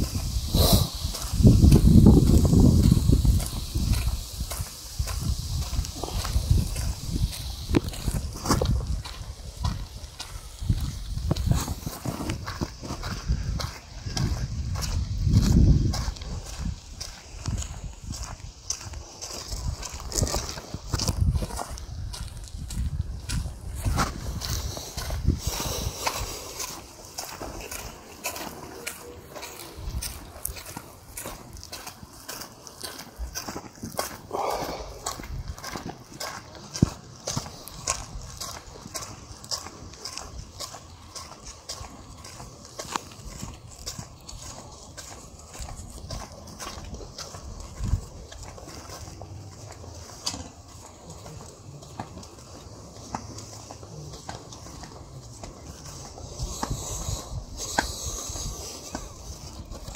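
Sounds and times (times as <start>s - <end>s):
footsteps on gravel path: 0.0s - 59.9s.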